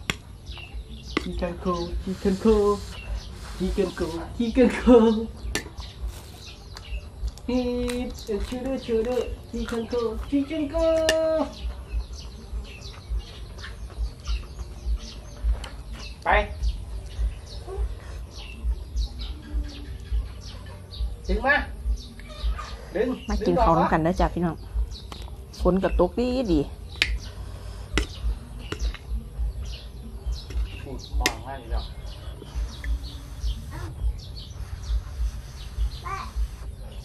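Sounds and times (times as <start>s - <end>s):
small birds chirping: 0.0s - 37.0s
low dull thuds: 9.3s - 20.4s, 23.3s - 36.8s.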